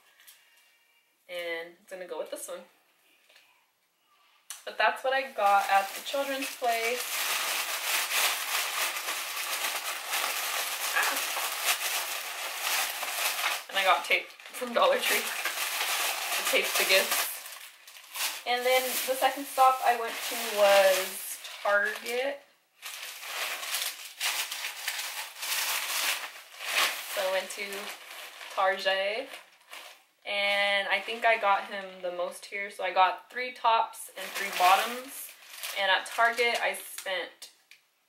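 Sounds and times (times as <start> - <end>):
plastic bag rustling: 4.9 - 30.1, 34.2 - 36.8.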